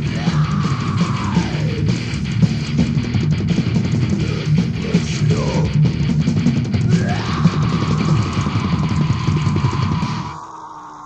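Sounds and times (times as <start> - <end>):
death metal band playing: 0.0 - 10.5.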